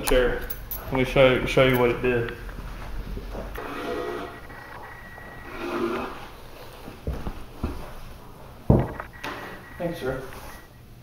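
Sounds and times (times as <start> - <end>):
cup knocking on wooden table: 8.7 - 9.0.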